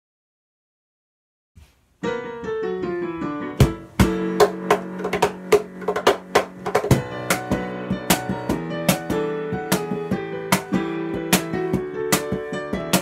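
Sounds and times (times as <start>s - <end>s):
digital piano: 2.0s - 13.0s
cajon slapped beat: 3.6s - 13.0s.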